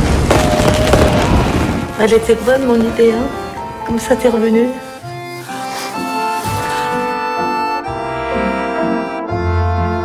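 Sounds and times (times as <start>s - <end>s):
fireworks crackling: 0.0s - 6.9s
music: 0.9s - 10.0s.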